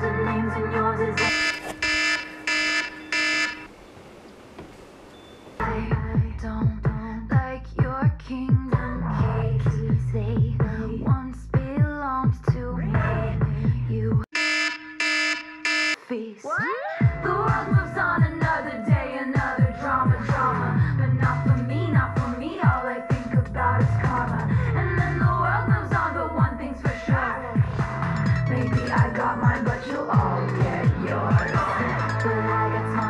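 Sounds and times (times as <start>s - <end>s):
music: 0.0s - 1.3s, 5.6s - 14.3s, 16.1s - 33.0s
pop vocal singing: 0.0s - 1.8s, 5.6s - 14.3s, 16.1s - 33.0s
electronic alarm beeping: 1.2s - 3.7s, 14.4s - 16.0s.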